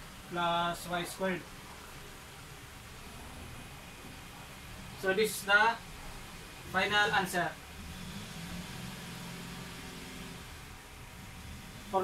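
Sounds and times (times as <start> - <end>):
machine hum and hiss: 0.0 - 12.0.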